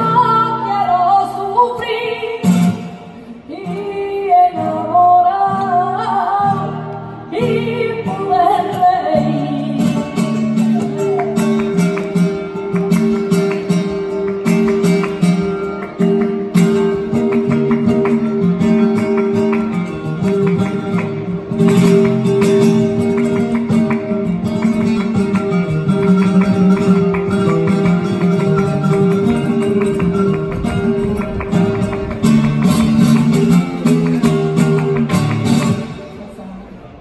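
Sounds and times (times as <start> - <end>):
woman singing: 0.0 - 10.5
flamenco guitar: 0.0 - 37.0.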